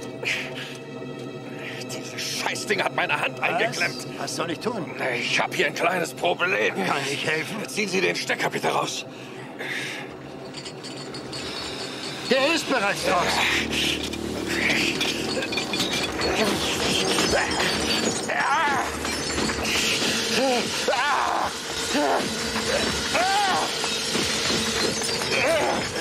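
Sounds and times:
steady hum: 9.1s - 26.0s
men groaning and crying out: 9.5s - 26.0s
noisy crackle: 11.4s - 26.0s.

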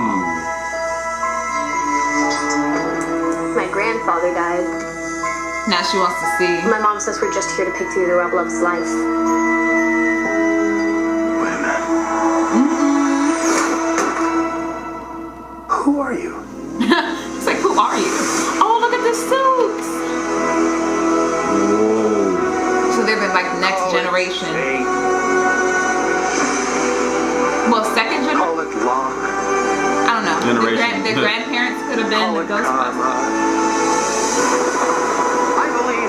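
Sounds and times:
music with steady held tones: 0.0s - 36.0s
voices speaking: 17.3s - 20.2s, 21.4s - 25.2s, 30.0s - 33.4s
sustained orchestral chord: 20.0s - 36.0s.

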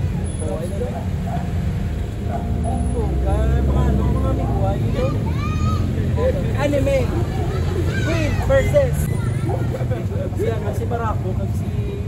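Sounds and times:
onlookers calling out: 2.4s - 10.7s.

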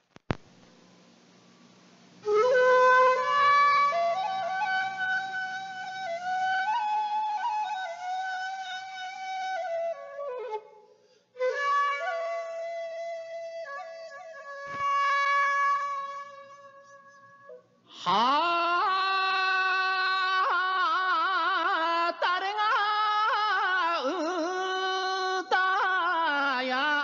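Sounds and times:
faint low hum: 0.0s - 26.3s
bamboo flute melody: 2.2s - 10.8s, 11.4s - 17.6s.

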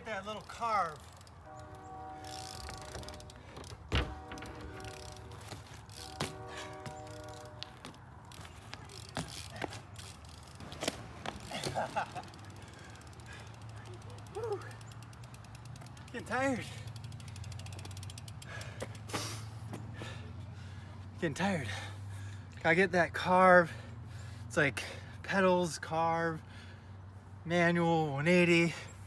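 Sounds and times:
bike clicks and knocks: 0.2s - 20.2s
steady buzzing tone: 1.1s - 8.4s
bike landing knock: 2.7s - 8.0s.

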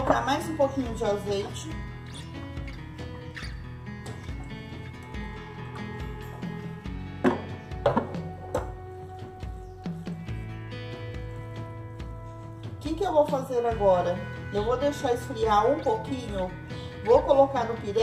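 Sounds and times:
background music with held notes: 0.0s - 18.0s.

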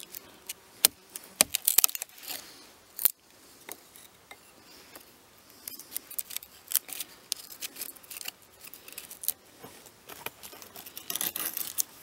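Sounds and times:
knife scraping dry wood: 0.0s - 3.1s, 5.6s - 12.0s.

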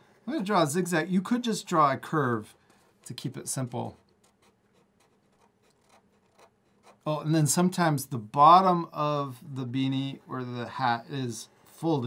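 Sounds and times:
marker scratching on paper: 2.4s - 7.1s.

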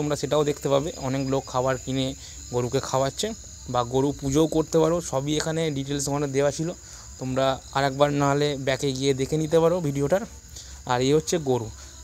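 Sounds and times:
man talking: 0.0s - 11.8s.

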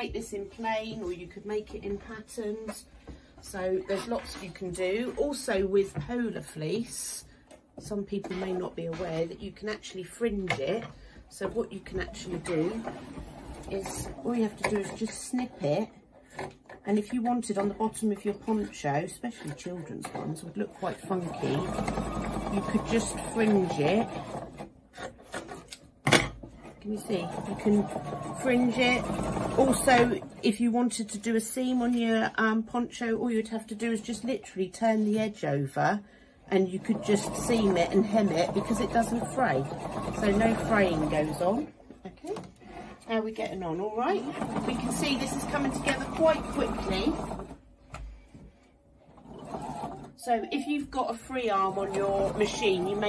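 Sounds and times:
sewing machine motor hum: 11.4s - 15.0s, 19.4s - 24.7s, 26.8s - 30.4s, 36.7s - 41.7s, 44.0s - 47.7s, 49.0s - 50.3s, 51.3s - 53.0s.

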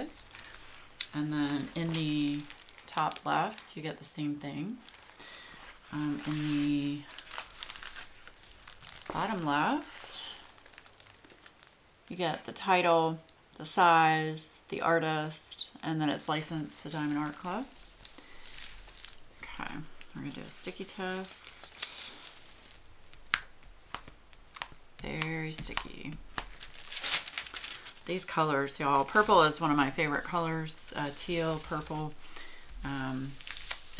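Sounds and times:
plastic film crinkling: 0.0s - 13.4s, 16.2s - 33.9s.

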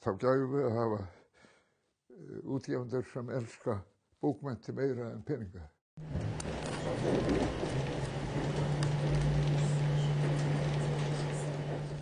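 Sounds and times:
background noise: 0.0s - 5.8s
steady low hum: 6.0s - 12.0s.

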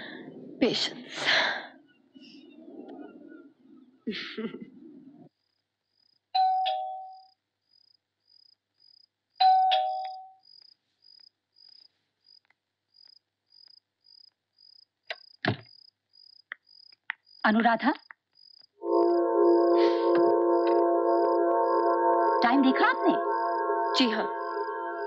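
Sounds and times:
crickets chirping: 5.3s - 25.0s.

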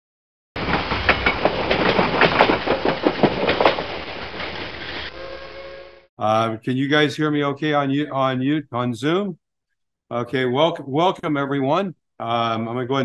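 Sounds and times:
train wheels clicking on rails: 0.6s - 5.1s.

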